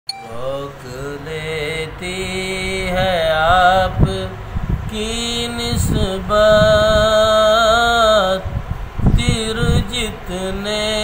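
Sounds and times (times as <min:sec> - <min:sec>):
man singing devotional song: 0:00.1 - 0:11.0.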